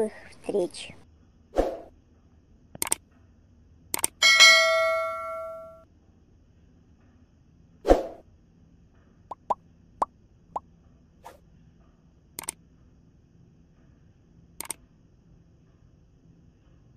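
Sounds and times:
sharp clicks: 0:02.8 - 0:03.0, 0:04.0 - 0:04.2, 0:14.6 - 0:14.8
short pops rising in pitch: 0:09.3 - 0:09.6.

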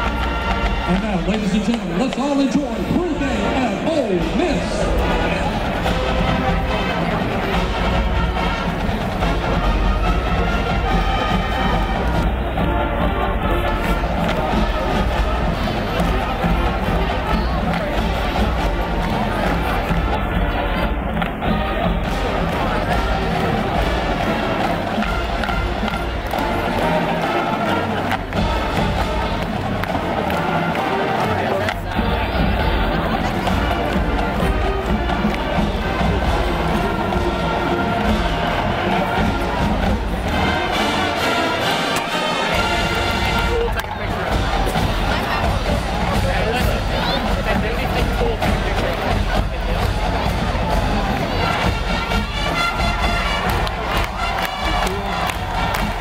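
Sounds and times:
crowd noise: 0:00.0 - 0:56.0
marching band playing: 0:00.0 - 0:56.0.

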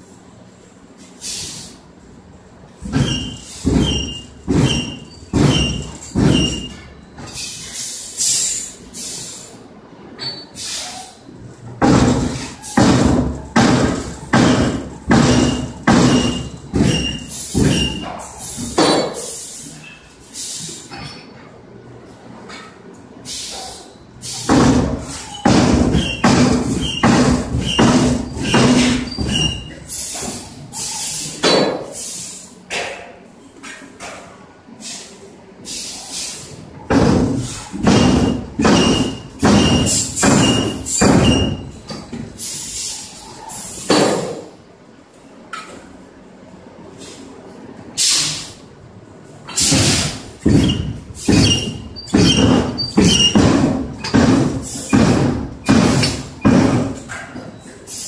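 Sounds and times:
screw presses striking heavy blows: 0:11.8 - 0:18.1, 0:24.4 - 0:29.5, 0:36.9 - 0:41.7, 0:49.6 - 0:57.0.

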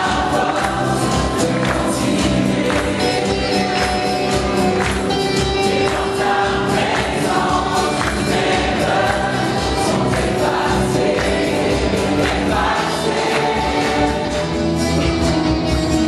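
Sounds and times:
gospel choir singing: 0:00.0 - 0:15.3
band with steady beat: 0:00.0 - 0:16.0.

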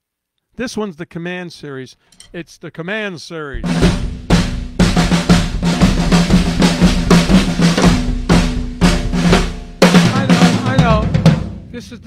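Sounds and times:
fast drum strikes with sticks: 0:03.6 - 0:12.0.

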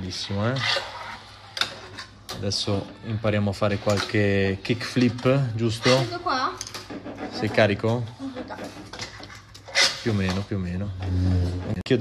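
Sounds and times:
fingerboard scraping on marble: 0:00.0 - 0:02.2, 0:05.7 - 0:11.8.

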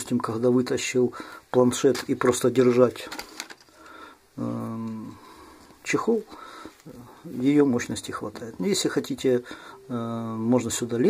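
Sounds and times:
clicks and rustling of case: 0:03.0 - 0:03.7.

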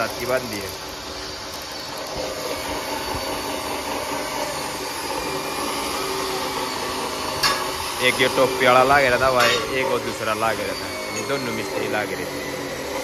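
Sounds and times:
machine humming with hiss: 0:00.0 - 0:13.0.

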